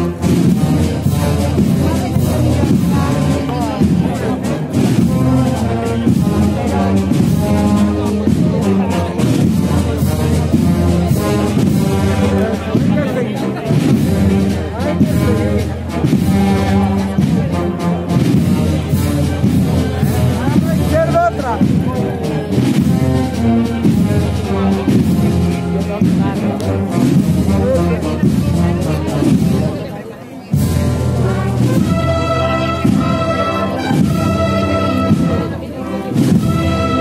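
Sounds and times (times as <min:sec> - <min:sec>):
brass instruments: 0:00.0 - 0:37.0
crowd voices: 0:00.0 - 0:37.0
wind band playing a march: 0:00.0 - 0:37.0.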